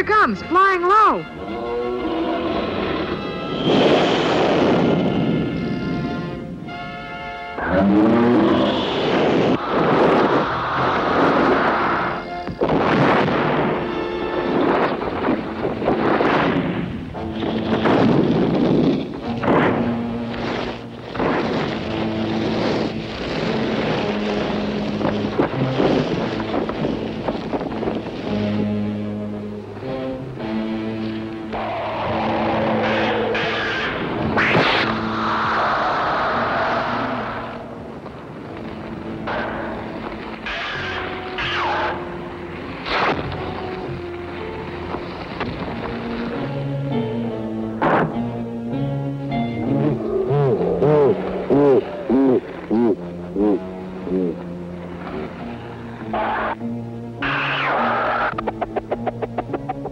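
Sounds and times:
film score music: 0:00.0 - 0:59.9.

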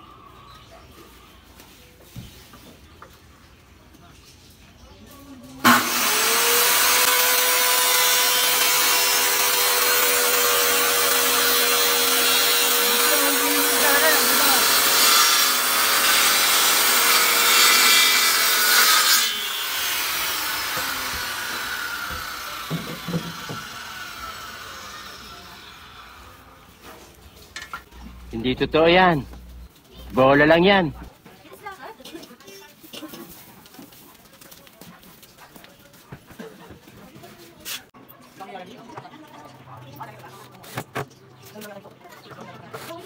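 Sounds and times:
circular saw cutting wood: 0:05.6 - 0:26.7.

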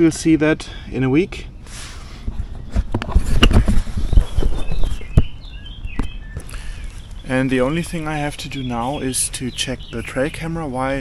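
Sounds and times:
camera handling knocks and rustles: 0:02.3 - 0:05.3
faint bird chirps: 0:02.4 - 0:10.8.

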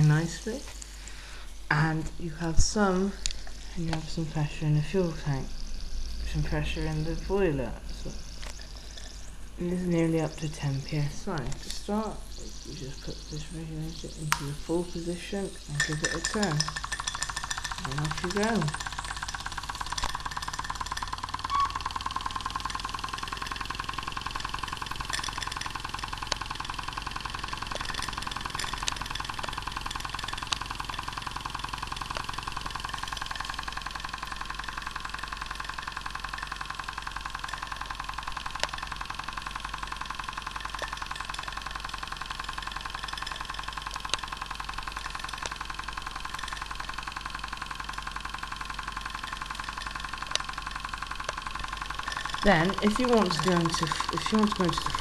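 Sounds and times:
sharp ticks: 0:11.3 - 0:55.0
steam engine chuffing: 0:15.5 - 0:55.0.

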